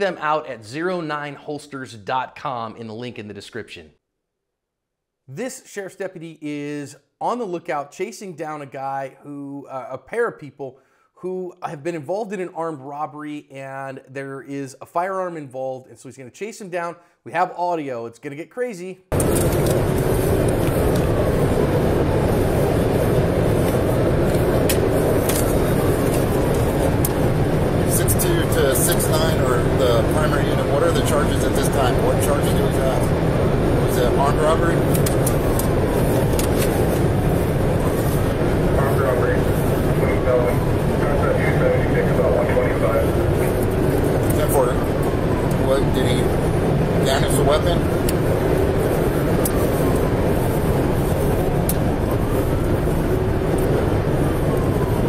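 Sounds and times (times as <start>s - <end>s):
car engine and road noise: 19.1s - 55.0s.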